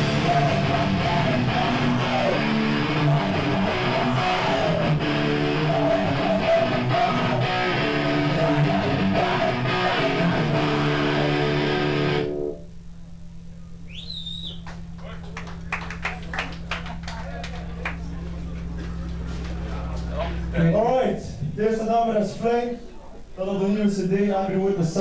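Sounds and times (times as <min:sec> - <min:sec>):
drums: 0:00.0 - 0:12.2, 0:13.5 - 0:21.9
bass guitar: 0:00.0 - 0:12.6, 0:13.8 - 0:21.8
distorted electric guitar: 0:00.0 - 0:12.9, 0:17.6 - 0:21.9
low steady hum: 0:00.0 - 0:25.0.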